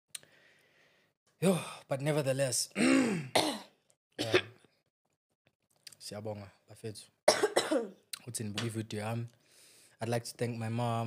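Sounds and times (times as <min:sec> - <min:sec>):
man coughing: 0:02.8 - 0:04.6, 0:07.3 - 0:08.0.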